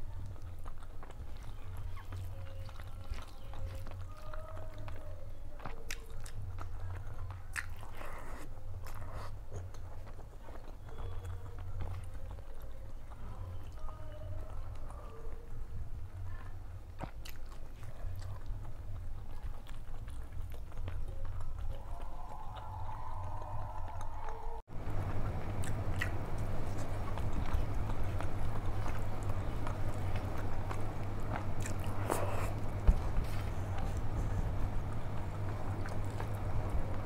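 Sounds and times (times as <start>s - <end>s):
person chewing food: 0.0s - 37.0s
steady low hum: 0.0s - 37.0s.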